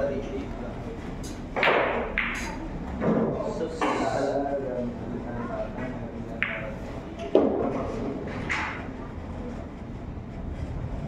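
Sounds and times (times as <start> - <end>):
indistinct talk in echoing room: 0.0 - 11.0.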